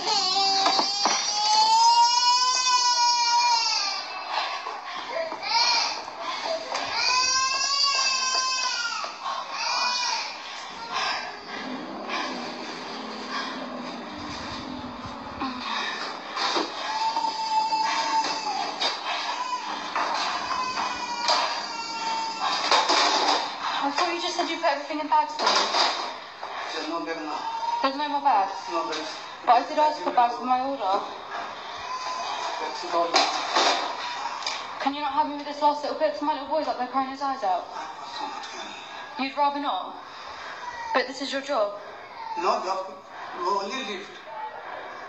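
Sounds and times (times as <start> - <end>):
small child crying: 0.0 - 4.3, 5.1 - 11.4, 16.6 - 23.5.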